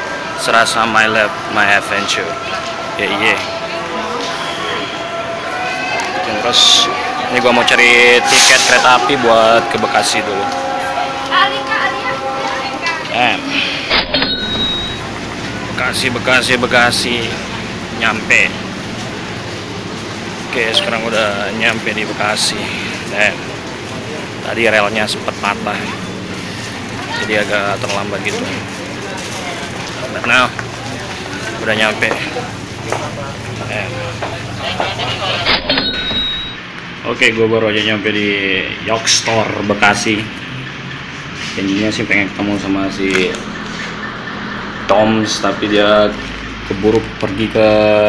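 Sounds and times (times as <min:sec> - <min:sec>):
people talking: 0:00.0 - 0:19.4, 0:20.4 - 0:40.4, 0:41.4 - 0:43.6, 0:44.8 - 0:48.0
electric train rumbling: 0:00.0 - 0:48.0
faint high tone: 0:20.6 - 0:21.6.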